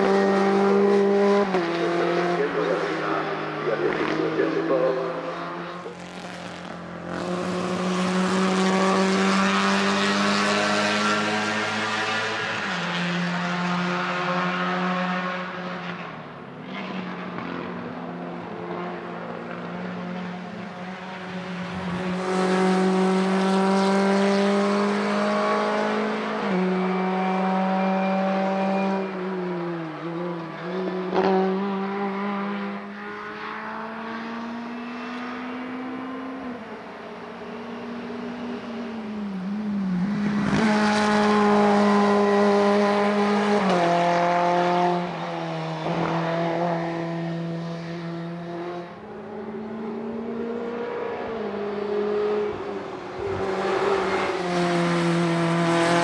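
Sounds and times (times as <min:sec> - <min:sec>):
race car engines at full throttle: 0:00.0 - 0:56.0.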